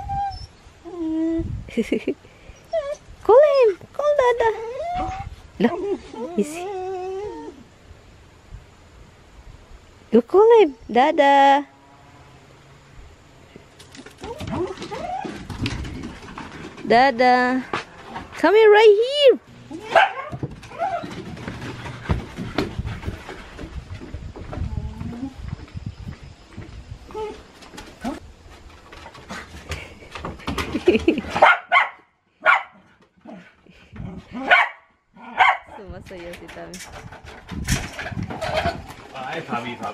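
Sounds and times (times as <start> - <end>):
dog whining: 0.0 - 1.5, 2.6 - 3.0, 4.4 - 7.7, 14.2 - 15.5
dogs barking and whining: 0.0 - 1.5, 2.6 - 7.7, 14.1 - 16.6, 19.0 - 22.7, 31.2 - 35.8.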